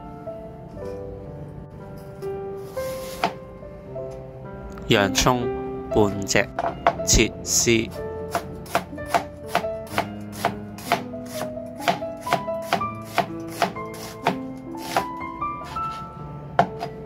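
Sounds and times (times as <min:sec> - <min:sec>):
knife chopping on cutting board: 0:08.3 - 0:15.1.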